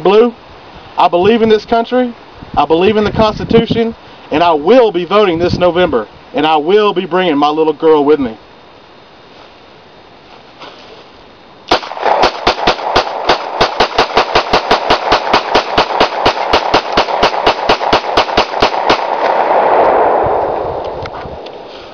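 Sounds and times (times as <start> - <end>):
pistol shots cracking: 11.7 - 21.0.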